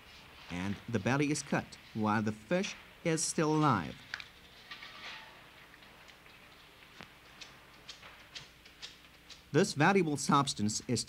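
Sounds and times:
low hiss: 0.0 - 4.3, 9.4 - 11.0.

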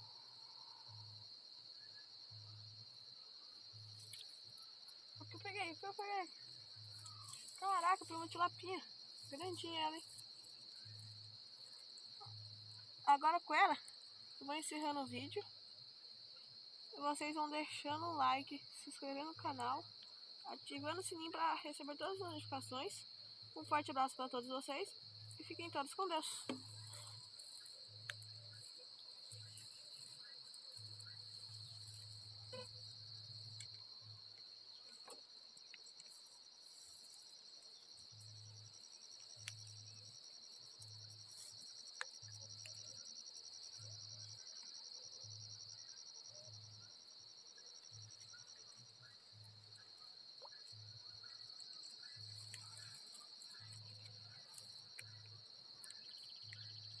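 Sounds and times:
insects chirring: 0.0 - 57.0
faint clicks: 4.0 - 4.4, 7.2 - 7.6, 26.3 - 28.3, 33.4 - 36.0, 39.4 - 39.6, 41.9 - 42.8, 52.3 - 56.8.

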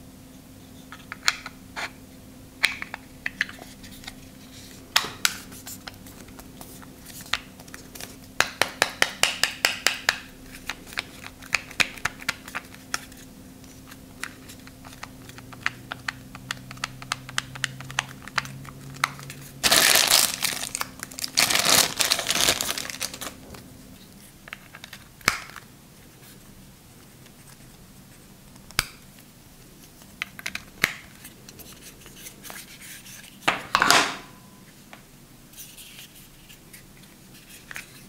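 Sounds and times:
plastic packaging crinkling: 17.6 - 25.7.

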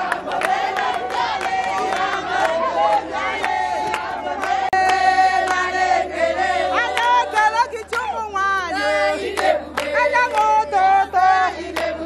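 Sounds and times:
crowd singing and shouting: 0.0 - 12.0.

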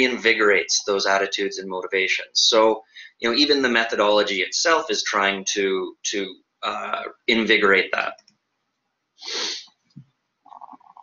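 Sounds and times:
breath burst into microphone: 9.2 - 9.7.

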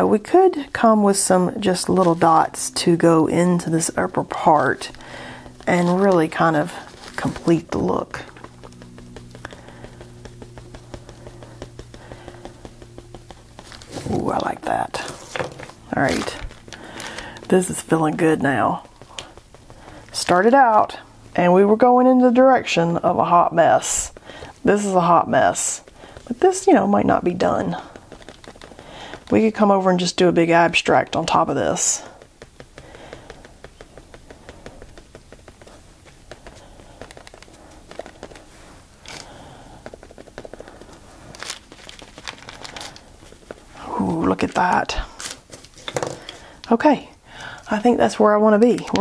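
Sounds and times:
low hum: 0.6 - 29.3
marker tapping on paper: 1.6 - 21.6, 23.2 - 45.1, 47.8 - 49.0.

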